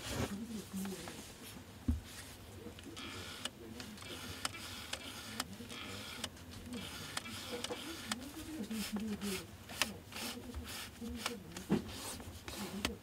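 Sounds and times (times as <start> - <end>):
cloth rubbing on lens barrel: 3.0 - 13.0.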